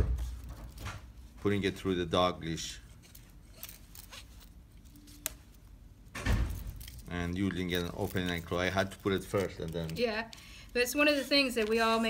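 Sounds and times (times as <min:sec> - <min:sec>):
nylon webbing rustling: 0:02.8 - 0:05.8.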